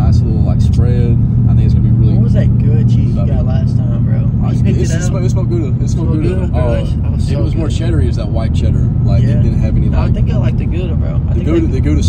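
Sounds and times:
car engine and road rumble: 0.0 - 12.0
men talking: 0.0 - 12.0.

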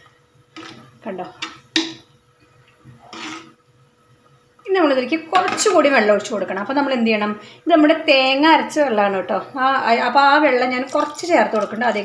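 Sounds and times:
ladle scraping clay pot: 0.6 - 2.0, 2.9 - 3.6.

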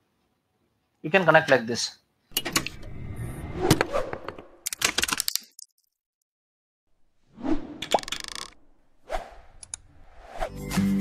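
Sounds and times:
whoosh: 2.6 - 4.6, 7.3 - 7.9, 8.6 - 10.6.

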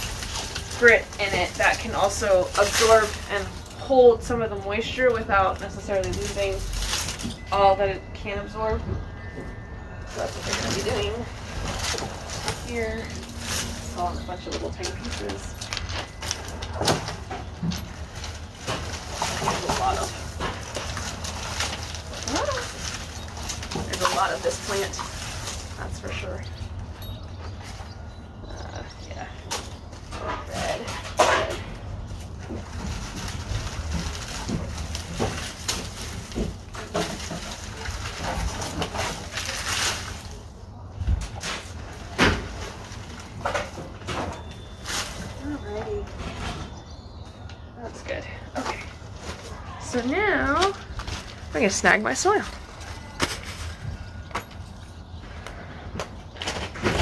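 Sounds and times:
low rumble: 0.0 - 31.0
gloved hands rustling plant: 0.0 - 31.1, 31.8 - 43.8.

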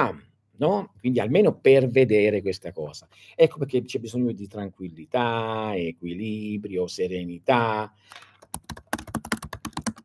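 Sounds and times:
computer keyboard typing: 8.1 - 10.0.

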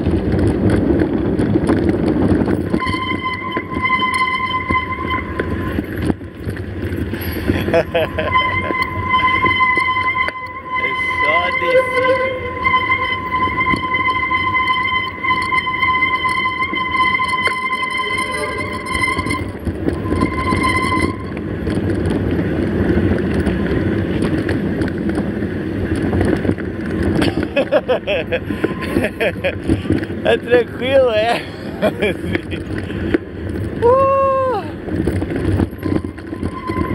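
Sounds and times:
bike tyres rumbling on dirt: 0.0 - 36.9
wind on microphone: 0.0 - 36.9
steady high whine: 1.9 - 33.9.

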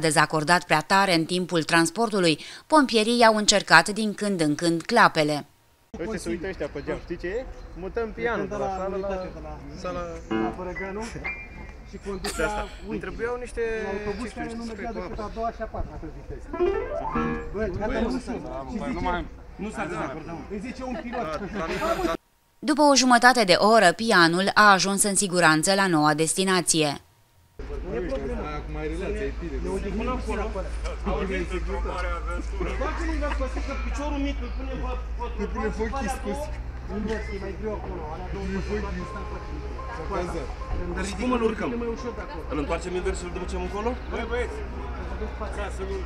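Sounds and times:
men talking over one another: 6.0 - 22.2, 27.6 - 46.0
high tone: 10.3 - 10.9, 16.5 - 17.8
piano notes: 10.3 - 11.7, 16.5 - 18.2, 38.6 - 44.0.

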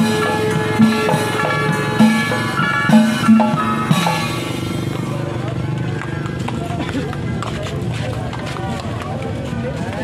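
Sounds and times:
irregular drum strikes: 0.0 - 5.2
crowd voices and calls: 0.0 - 10.0
street procession music: 0.0 - 10.0.

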